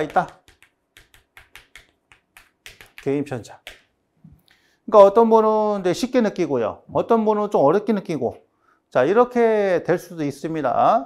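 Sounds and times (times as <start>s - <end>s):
marker pen tapping on board: 0.0s - 4.0s.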